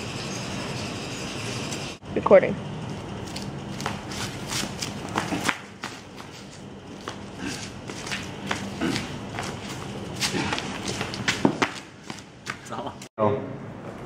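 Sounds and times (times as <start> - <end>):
flip-flops slapping on concrete: 3.3 - 13.0.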